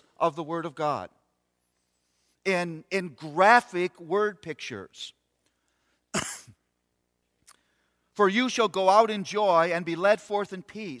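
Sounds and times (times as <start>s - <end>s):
man coughing: 6.1s - 6.7s.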